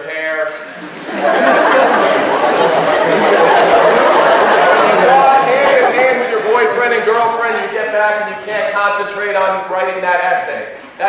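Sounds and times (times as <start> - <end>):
large audience laughing: 0.7 - 8.6.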